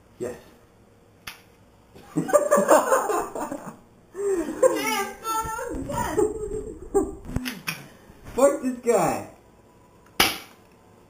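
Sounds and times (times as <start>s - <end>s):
people laughing: 2.0s - 5.0s.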